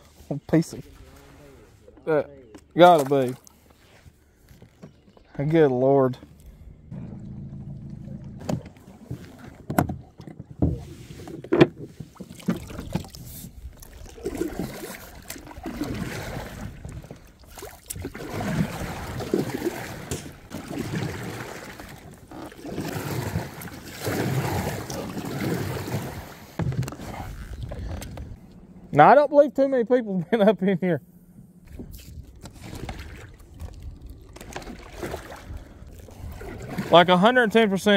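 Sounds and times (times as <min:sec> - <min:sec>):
debris scraping along kayak hull: 0:02.8 - 0:05.4, 0:06.2 - 0:28.4, 0:31.6 - 0:37.9.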